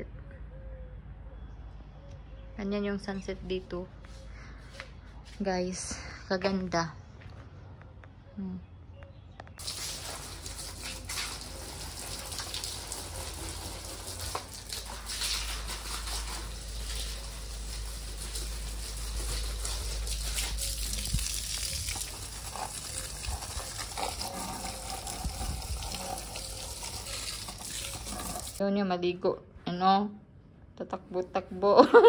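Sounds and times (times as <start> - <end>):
garden hose spraying water: 9.6 - 28.6.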